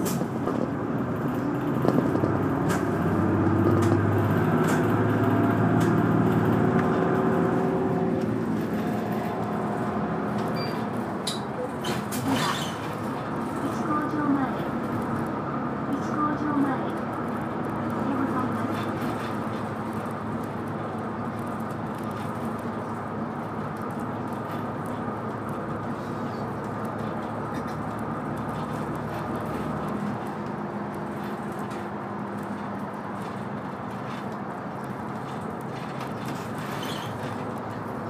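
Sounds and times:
bus engine hum: 0.0s - 38.0s
road rumble: 0.0s - 38.0s.

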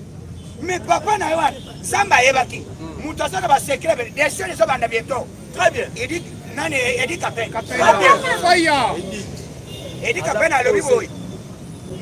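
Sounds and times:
man speaking: 0.6s - 9.4s, 10.0s - 11.1s.

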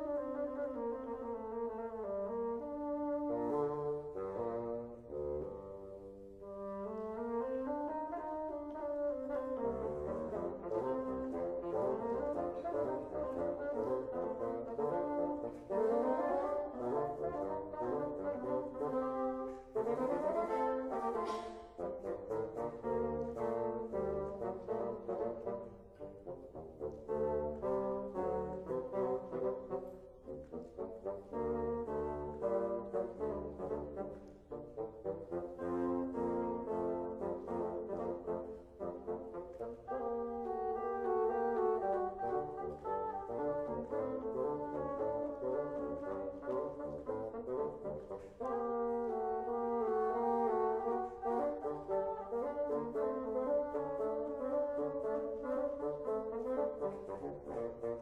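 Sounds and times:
bassoon duet: 0.0s - 58.0s.

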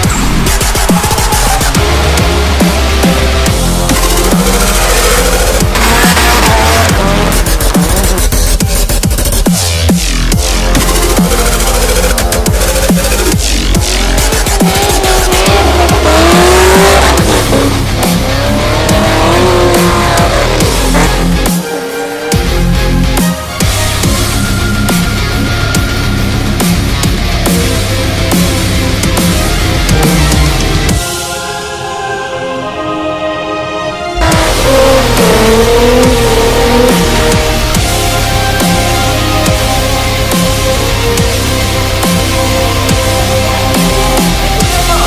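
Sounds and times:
electronic dance music: 0.0s - 24.3s, 34.2s - 45.0s
car engine at high revs: 1.6s - 9.5s, 10.8s - 21.6s, 34.2s - 44.9s.

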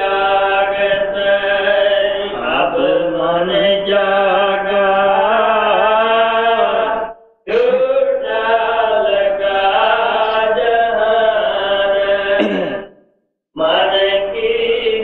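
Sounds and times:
person chanting in held notes: 0.0s - 12.8s.

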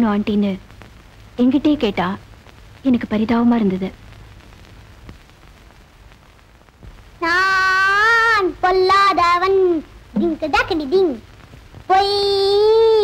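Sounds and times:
child singing: 7.2s - 11.2s, 11.9s - 13.0s.

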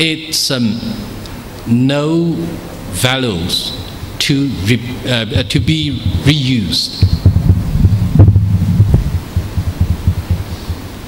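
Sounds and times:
microphone handling thumps: 5.4s - 11.0s.

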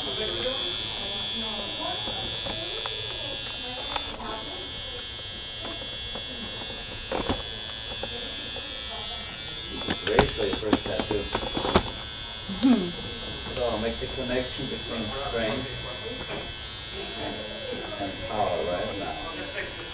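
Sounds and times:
tattoo machine buzzing: 0.0s - 19.9s.

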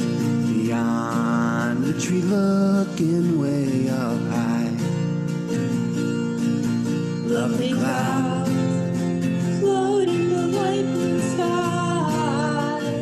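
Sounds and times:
person singing: 0.0s - 5.0s, 7.2s - 13.0s
acoustic guitar chords: 0.0s - 13.0s.

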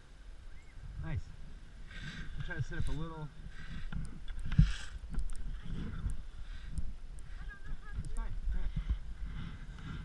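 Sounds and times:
wind rumble on microphone: 0.4s - 10.0s
person talking: 7.3s - 9.0s.

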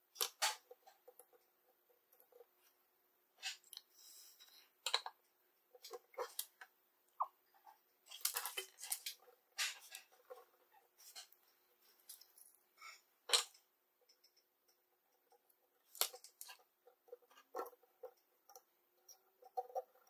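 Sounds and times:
wires clicking and rustling: 0.0s - 2.8s, 3.4s - 20.0s.

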